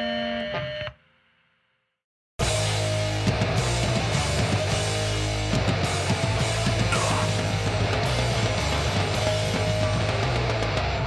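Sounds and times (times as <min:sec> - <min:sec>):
band holding distorted guitar chord: 0:02.4 - 0:11.0.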